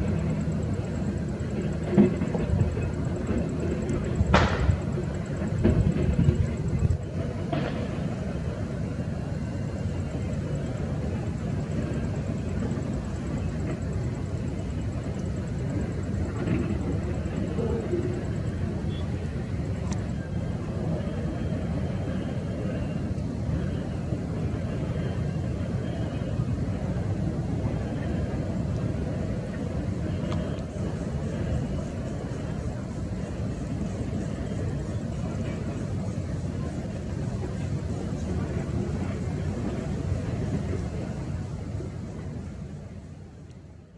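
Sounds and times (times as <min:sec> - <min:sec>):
distant jet airliner rumble: 0:00.0 - 0:43.9.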